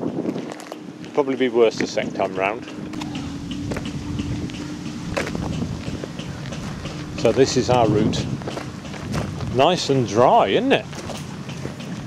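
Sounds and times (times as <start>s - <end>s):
wind rumbling on microphone: 0.0s - 12.0s
footsteps on gravel: 0.1s - 12.0s.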